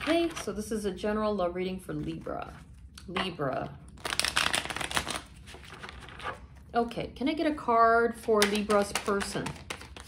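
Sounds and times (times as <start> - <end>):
cards riffle-shuffled: 4.0 - 6.4, 8.5 - 10.0
handling deck of cards: 4.0 - 6.4, 8.4 - 10.0.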